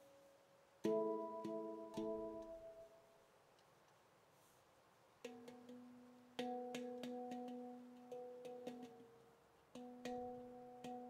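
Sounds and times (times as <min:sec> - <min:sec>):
light taps on handpan: 0:00.8 - 0:02.8, 0:05.2 - 0:11.0
handpan notes played by hand: 0:00.8 - 0:03.0, 0:05.3 - 0:11.0.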